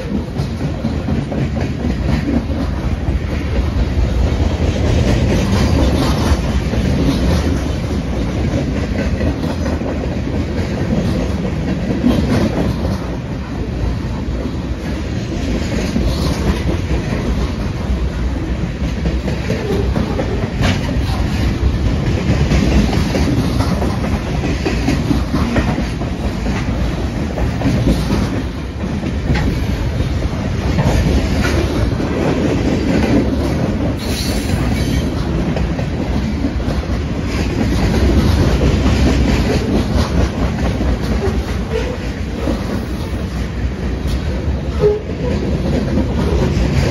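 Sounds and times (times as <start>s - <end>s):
clacks over rail joints: 0.0s - 46.9s
steel wheels rumbling on rail: 0.0s - 46.9s.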